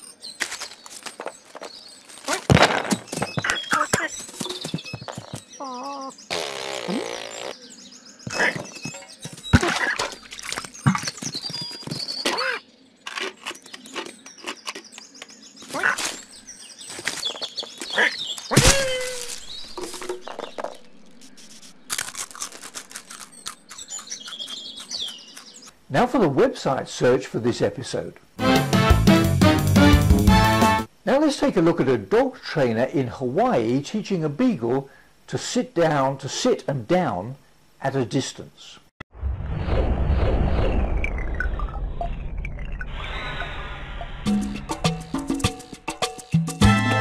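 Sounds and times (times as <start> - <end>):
cartoon scuffling knocks and thuds: 0.4 - 5.5, 8.2 - 12.5, 16.9 - 21.3
high chirps and chattering: 19.3 - 25.7.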